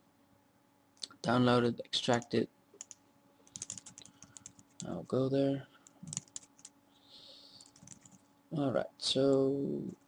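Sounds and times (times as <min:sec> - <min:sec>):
computer keyboard typing: 0:02.1 - 0:05.0, 0:05.8 - 0:06.8, 0:07.6 - 0:08.2.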